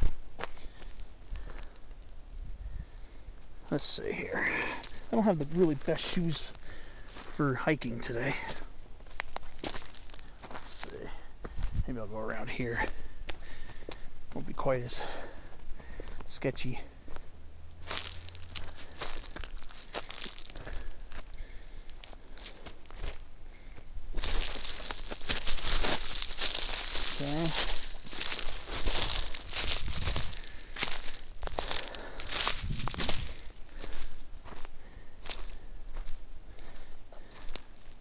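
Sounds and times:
footsteps crunching on dry leaves: 0.0 - 1.8, 3.8 - 38.0.

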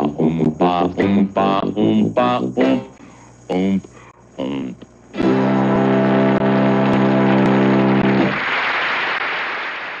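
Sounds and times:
tuba and band sustained chord: 5.2 - 8.4
audience applause: 7.1 - 10.0.

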